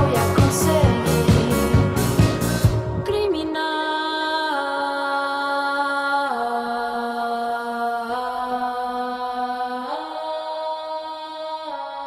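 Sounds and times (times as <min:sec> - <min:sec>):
woman singing sustained notes: 0:00.0 - 0:01.9, 0:02.8 - 0:12.0
live band playing: 0:00.0 - 0:03.0.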